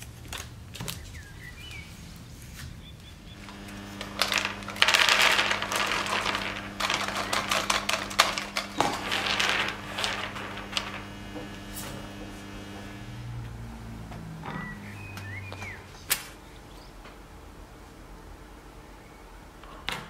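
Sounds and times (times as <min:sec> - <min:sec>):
nuts pouring onto metal tray: 0:03.4 - 0:12.7
nuts shuffled across tray: 0:03.4 - 0:13.0.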